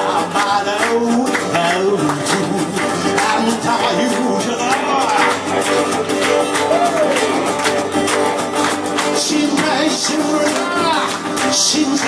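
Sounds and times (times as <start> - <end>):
man singing: 0.0 - 7.6, 9.0 - 12.0
electric guitar: 0.0 - 12.0
strummed acoustic guitar: 0.0 - 12.0.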